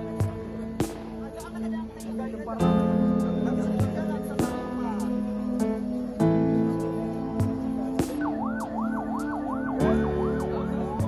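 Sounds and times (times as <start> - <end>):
background music: 0.0 - 11.0
siren yelping: 8.2 - 11.0.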